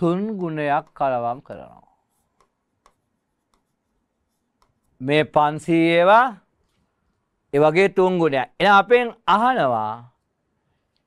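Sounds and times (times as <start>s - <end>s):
pen ticking on touch screen: 2.3s - 3.8s.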